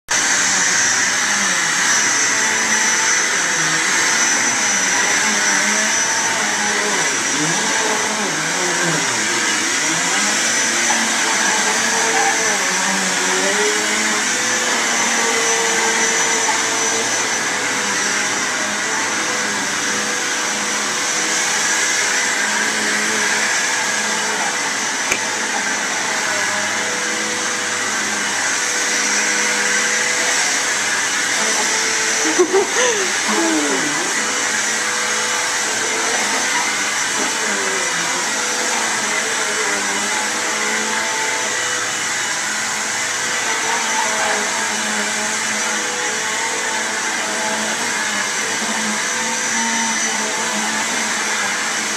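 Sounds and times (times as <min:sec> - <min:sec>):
vacuum cleaner running on carpet: 0:00.1 - 0:51.9.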